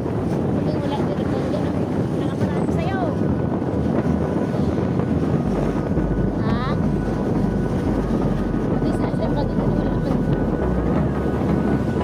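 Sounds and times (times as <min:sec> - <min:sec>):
motorcycle engine rumble: 0:00.0 - 0:12.0
wind rushing over microphone: 0:00.0 - 0:12.0.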